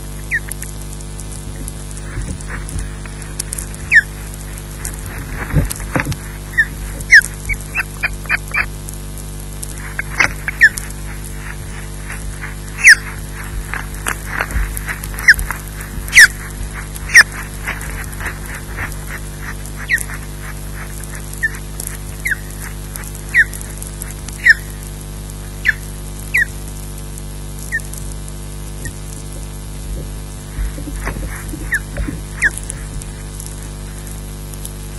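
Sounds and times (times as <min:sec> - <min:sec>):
steady low hum: 0:00.0 - 0:34.9
osprey whistled chirps: 0:00.3 - 0:00.5, 0:03.8 - 0:04.2, 0:06.5 - 0:08.7, 0:09.8 - 0:17.5, 0:19.1 - 0:23.7, 0:24.4 - 0:24.8, 0:25.6 - 0:26.6, 0:31.6 - 0:32.6.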